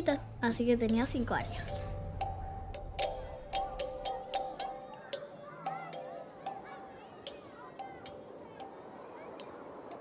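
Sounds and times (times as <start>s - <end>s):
faint children's voices: 0.0s - 2.1s, 3.0s - 10.0s
steady ticking: 0.0s - 10.0s.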